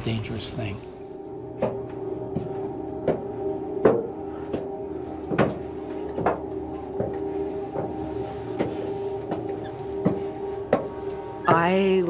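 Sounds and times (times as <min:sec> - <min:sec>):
low hum: 0:00.0 - 0:12.0
footsteps on stone stairs: 0:01.5 - 0:11.6.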